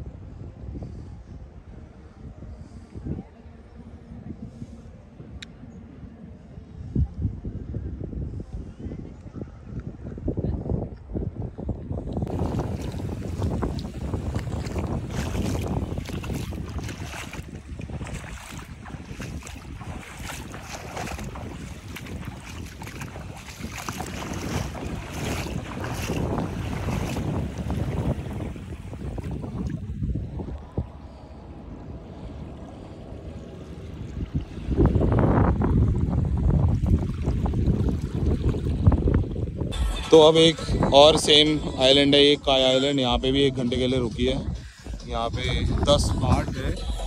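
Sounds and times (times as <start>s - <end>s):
wind buffeting microphone: 0.0s - 39.8s, 40.6s - 47.0s
shallow seawater washing: 12.3s - 39.3s.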